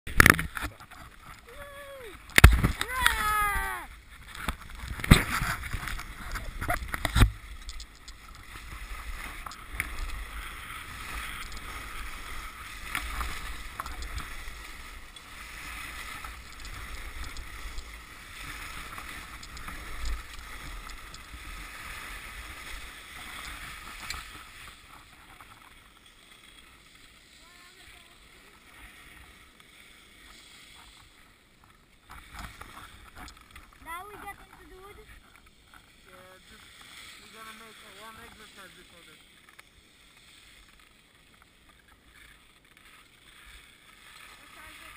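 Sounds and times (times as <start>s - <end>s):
skis scraping over snow: 0.1s - 44.9s.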